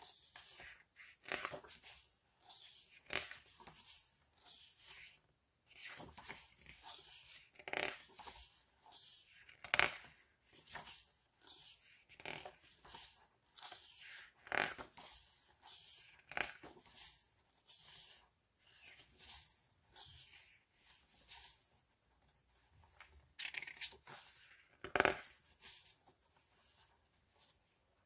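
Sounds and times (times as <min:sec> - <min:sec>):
pages turning: 0:00.2 - 0:21.6, 0:22.8 - 0:27.6.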